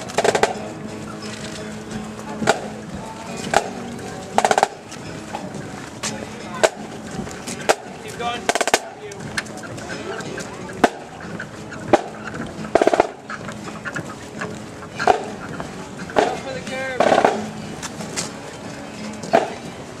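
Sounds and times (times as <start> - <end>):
voices: 0.0 - 20.0.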